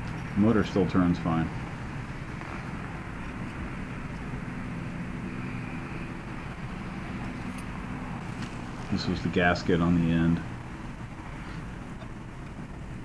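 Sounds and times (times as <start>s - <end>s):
faint hum: 0.0s - 13.0s
low background rumble: 0.0s - 13.0s.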